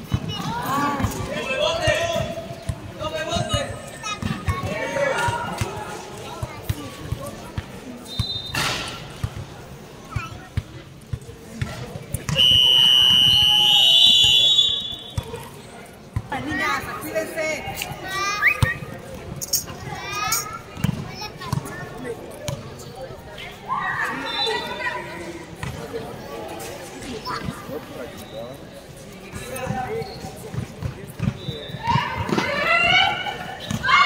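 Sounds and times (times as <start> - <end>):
players shouting: 31.7 - 34.0.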